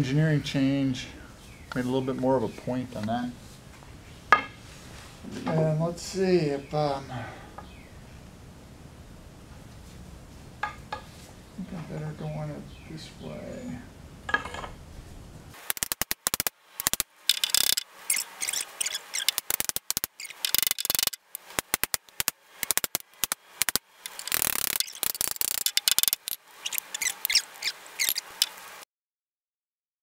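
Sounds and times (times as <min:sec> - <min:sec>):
tool scraping and clicking on metal: 0:15.7 - 0:28.6.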